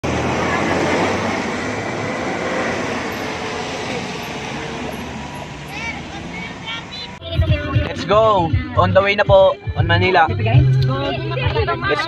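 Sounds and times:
traffic on a wet road: 0.0s - 7.3s.

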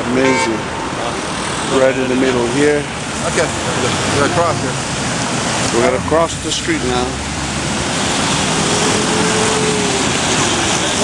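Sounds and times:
crowd murmur: 0.0s - 11.0s
loud traffic noise: 0.0s - 11.0s.

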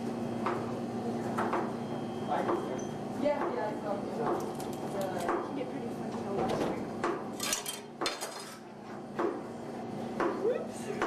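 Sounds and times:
dishes and cutlery clinking: 7.4s - 8.6s.

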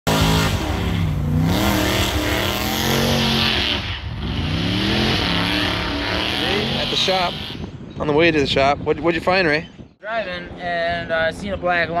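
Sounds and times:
car engine revving hard: 0.1s - 7.6s.

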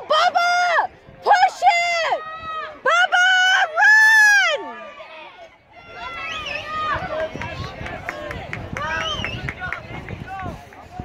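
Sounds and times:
spectators shouting and cheering: 0.0s - 11.0s.

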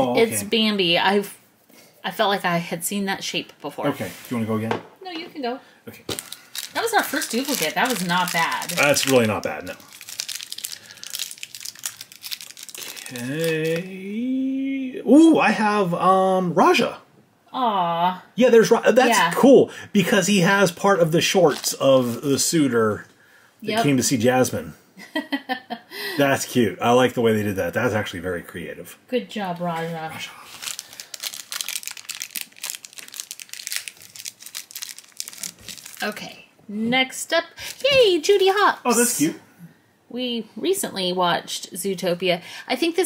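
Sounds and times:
foil wrapper crinkling and tearing: 6.1s - 13.9s, 21.4s - 21.8s, 30.4s - 36.2s.

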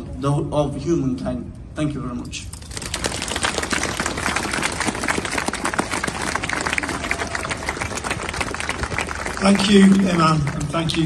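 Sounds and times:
crowd applauding: 2.7s - 11.0s.

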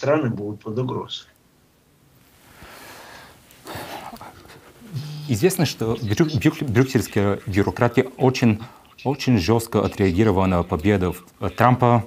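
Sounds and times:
person breathing noisily: 2.5s - 5.1s.

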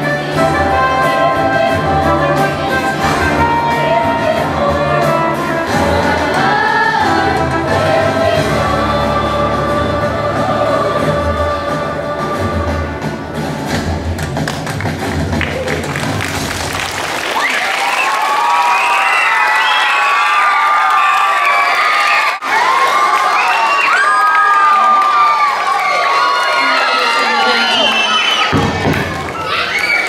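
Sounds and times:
song with bass: 0.0s - 16.6s
children cheering and shouting: 17.3s - 30.0s.

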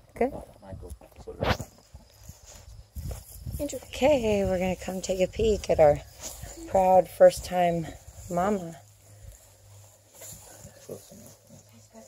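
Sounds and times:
footsteps rustling in straw: 1.7s - 12.0s.

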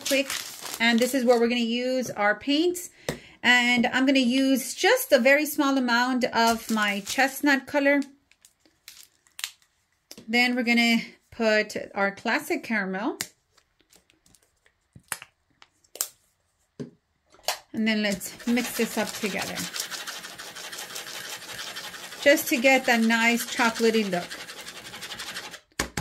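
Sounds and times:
paintbrush scratching on paper: 18.2s - 25.6s.

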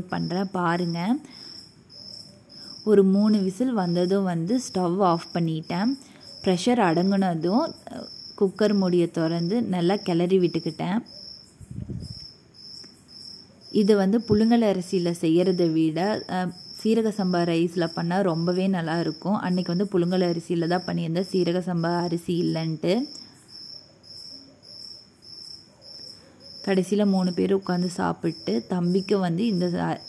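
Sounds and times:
insect chirping: 0.0s - 30.0s.

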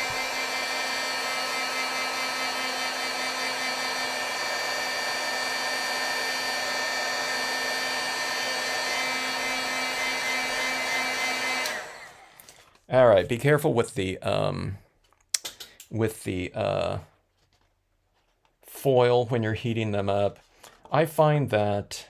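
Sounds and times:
heat gun blowing with fan whine: 0.0s - 12.5s.

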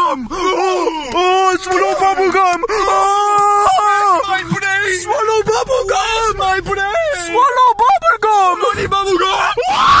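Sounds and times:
young man yelling and screaming: 0.0s - 10.0s.

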